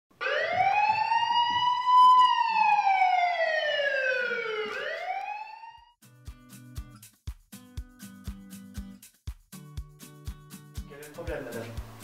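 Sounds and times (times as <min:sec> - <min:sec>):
siren wailing: 0:00.2 - 0:06.0.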